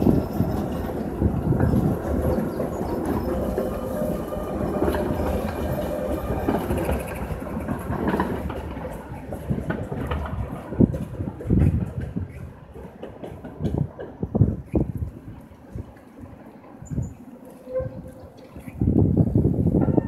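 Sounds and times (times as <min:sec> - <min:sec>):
tram wheels clattering over rails: 0:00.0 - 0:18.7.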